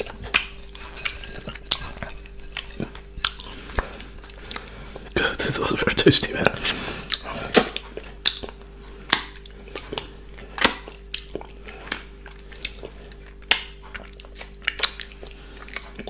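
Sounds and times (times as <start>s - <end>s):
close chewing mouth sounds: 0.0s - 16.0s.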